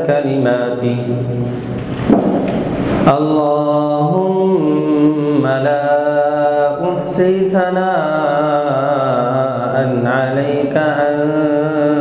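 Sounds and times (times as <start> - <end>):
loud rushing rumbling noise: 1.4 - 3.6.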